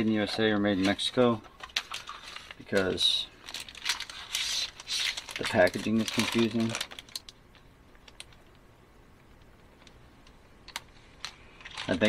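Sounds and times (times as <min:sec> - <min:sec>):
paper rustling: 0:00.0 - 0:07.2, 0:11.2 - 0:12.0
man speaking: 0:05.4 - 0:06.8.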